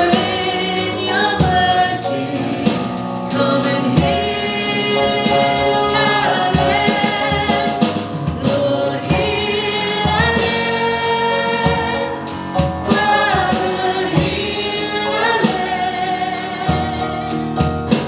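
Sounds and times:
man and woman singing in harmony: 0:00.0 - 0:17.5
drums: 0:00.0 - 0:18.0
keyboard: 0:00.0 - 0:18.0.

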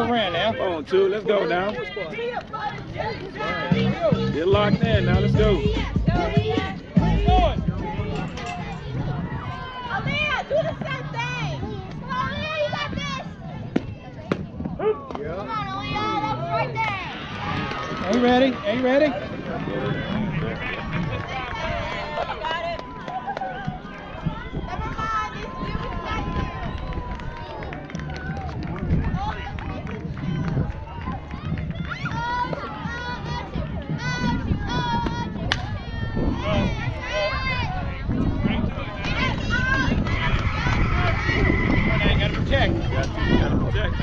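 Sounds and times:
young players and spectators chattering: 0:00.0 - 0:44.0.

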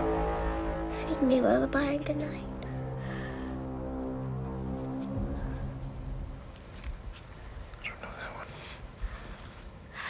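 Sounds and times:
low background rumble: 0:00.0 - 0:10.0
breathy whisper: 0:07.5 - 0:10.0.

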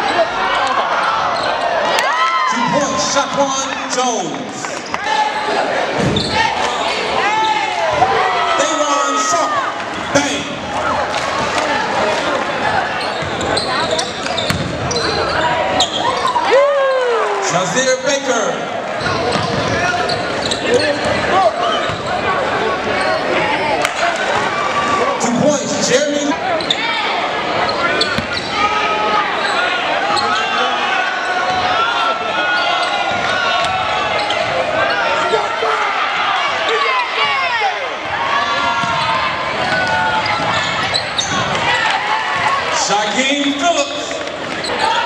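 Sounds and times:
sneakers squeaking: 0:00.0 - 0:02.0, 0:04.7 - 0:05.2, 0:05.9 - 0:08.8, 0:09.7 - 0:16.5, 0:18.9 - 0:23.6, 0:25.8 - 0:31.8, 0:32.4 - 0:35.5, 0:38.5 - 0:42.7, 0:43.3 - 0:45.0
crowd voices and shouts: 0:00.0 - 0:45.0.

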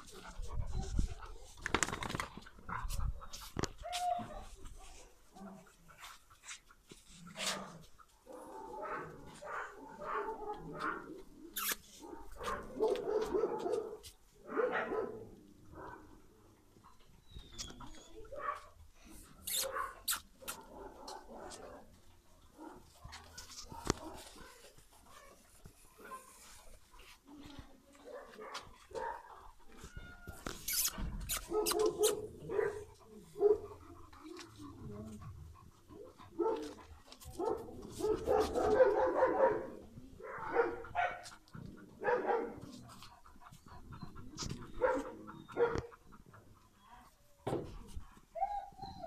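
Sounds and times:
dogs vocalizing: 0:40.4 - 0:47.2.

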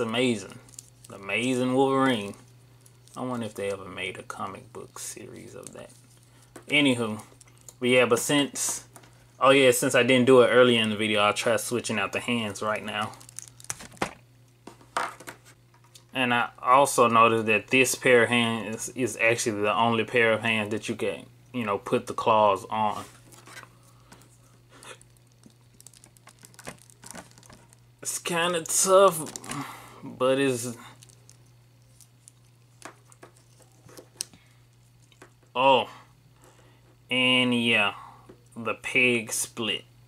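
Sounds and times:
plastic parts rubbing: 0:23.0 - 0:27.9.

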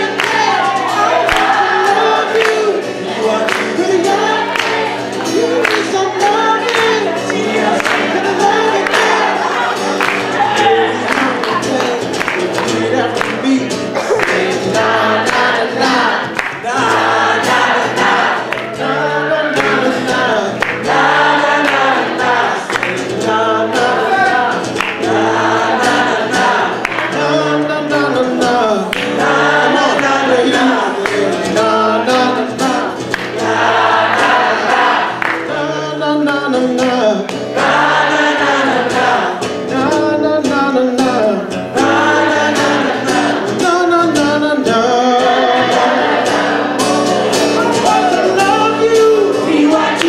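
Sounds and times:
person singing: 0:00.0 - 0:50.0
strummed acoustic guitar: 0:00.0 - 0:50.0.

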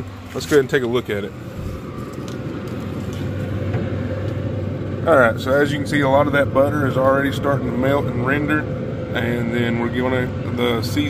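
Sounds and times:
smoker fan and motor hum: 0:00.0 - 0:11.0.

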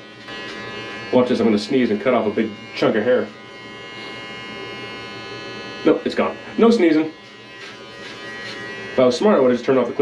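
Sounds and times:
electric hair clippers cutting: 0:00.0 - 0:10.0.

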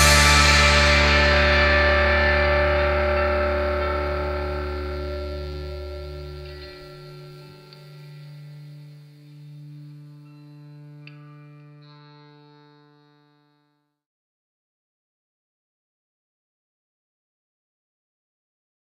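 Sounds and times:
low bass note: 0:00.0 - 0:11.8
distorted electric guitar chord: 0:00.0 - 0:13.8.

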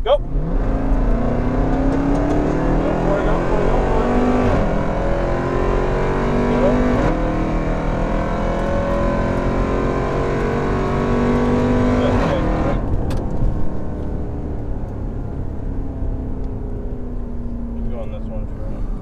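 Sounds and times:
gear upshifts: 0:00.0 - 0:14.2
car engine at full throttle: 0:00.0 - 0:19.0.

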